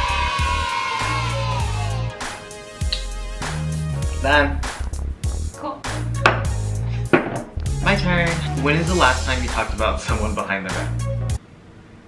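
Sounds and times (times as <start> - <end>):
music with steady bass: 0.0 - 11.4
glass knocking on wooden table: 6.2 - 6.5, 7.1 - 7.5.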